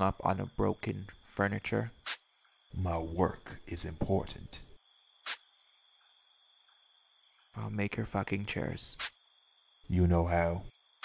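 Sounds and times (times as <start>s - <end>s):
crickets chirring: 0.0s - 11.0s
short sharp hiss: 2.0s - 2.3s, 5.2s - 5.5s, 9.0s - 9.2s.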